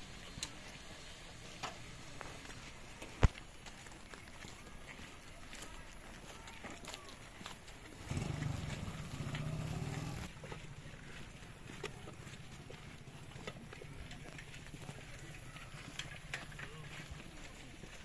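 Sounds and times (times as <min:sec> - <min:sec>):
footsteps on road: 0:00.0 - 0:18.0
motorcycle engine running: 0:07.1 - 0:18.0.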